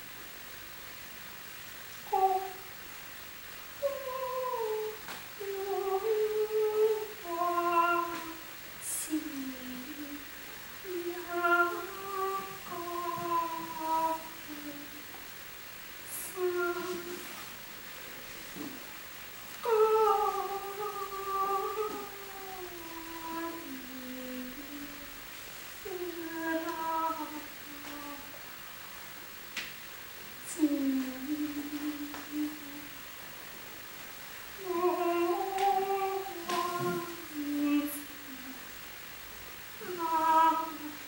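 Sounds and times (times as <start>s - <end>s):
woman singing wordless notes: 2.0s - 2.8s, 3.8s - 15.2s, 16.0s - 17.6s, 18.5s - 28.6s, 30.4s - 33.0s, 34.5s - 38.8s, 39.7s - 41.0s.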